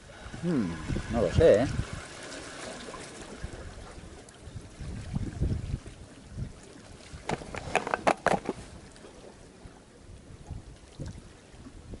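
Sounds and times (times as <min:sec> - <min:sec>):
wind rumbling on microphone: 0:00.0 - 0:12.0
water washing at rocks: 0:00.6 - 0:09.4.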